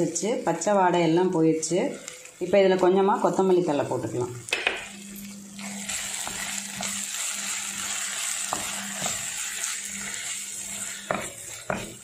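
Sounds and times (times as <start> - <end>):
gravy sizzling in a pan: 0.0 - 12.0
spatula stirring: 5.2 - 12.0
spatula tapping a pan: 8.4 - 9.3, 11.0 - 12.0.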